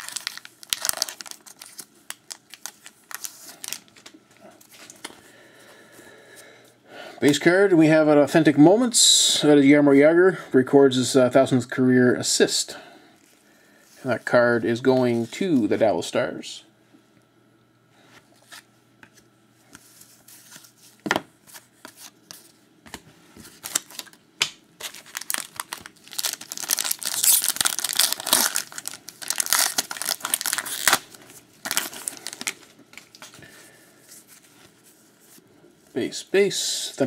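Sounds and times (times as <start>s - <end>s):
card pack wrapper tearing and crinkling: 0.0s - 5.1s, 23.5s - 33.4s
packaging rustles: 0.0s - 5.2s, 19.8s - 24.2s, 24.8s - 35.4s.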